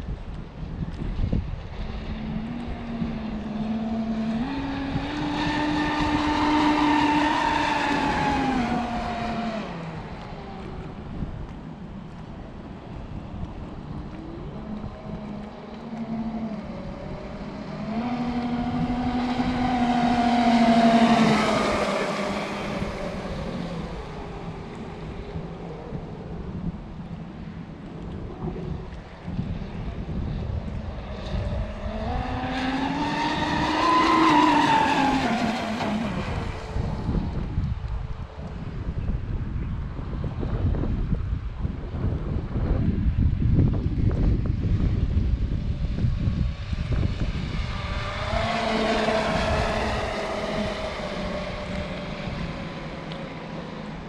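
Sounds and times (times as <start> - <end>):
wind rumble on microphone: 0.0 - 54.0
rc boat motor whine passing: 0.1 - 39.4, 42.6 - 54.0.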